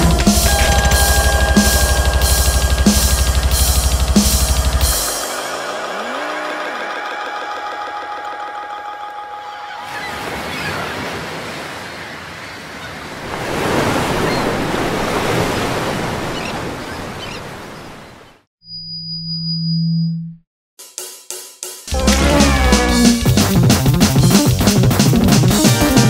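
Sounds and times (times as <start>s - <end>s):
held synth chord: 0.0s - 9.7s, 21.9s - 23.6s
wash of noise like surf: 0.2s - 9.2s.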